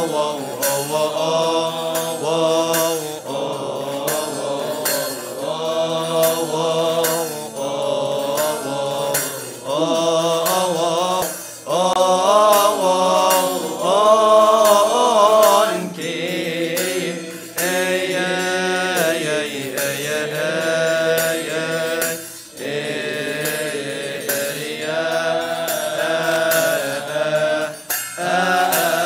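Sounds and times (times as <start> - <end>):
group chanting: 0.0 - 29.0
regular percussive beat: 0.0 - 29.0.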